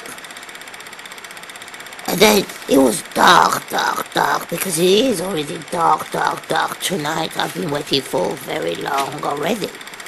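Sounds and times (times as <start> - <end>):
pulsing mechanical hum: 0.0 - 10.0.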